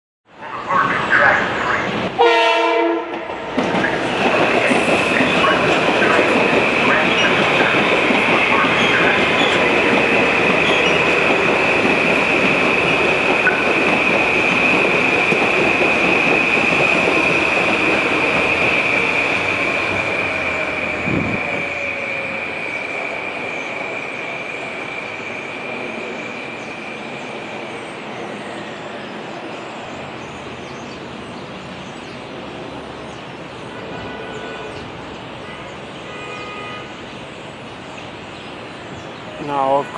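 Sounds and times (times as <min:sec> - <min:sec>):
train rail noise: 0:00.3 - 0:39.9
train horn blast: 0:02.2 - 0:03.4, 0:33.7 - 0:34.8, 0:35.4 - 0:37.0.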